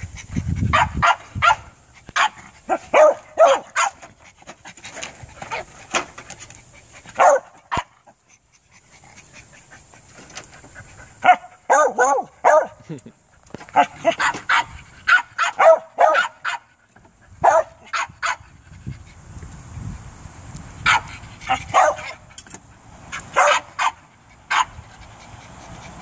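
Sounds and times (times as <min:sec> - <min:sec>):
dog barking: 0:00.7 - 0:04.0, 0:07.2 - 0:07.9, 0:11.2 - 0:12.8, 0:13.8 - 0:16.7, 0:17.4 - 0:18.4, 0:20.9 - 0:21.1, 0:21.7 - 0:22.2, 0:23.4 - 0:24.7.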